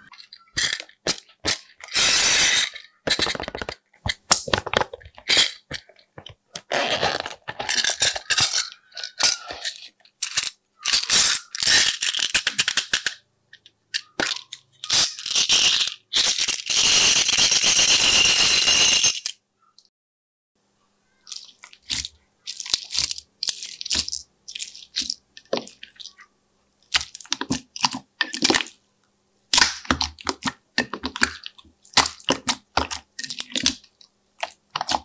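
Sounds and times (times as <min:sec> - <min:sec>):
sprinkles rattling: 0:21.2 - 0:26.3.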